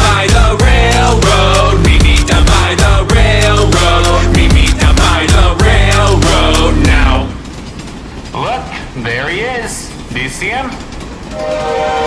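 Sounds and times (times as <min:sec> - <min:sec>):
song music: 0:00.0 - 0:07.4
train rumbling and clattering: 0:00.0 - 0:12.0.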